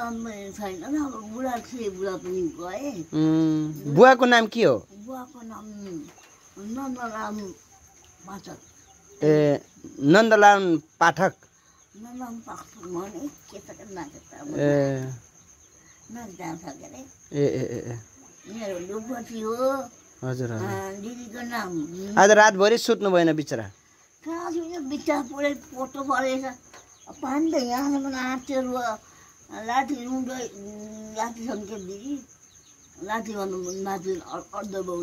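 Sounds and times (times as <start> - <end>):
high insect trill: 0.0 - 35.0.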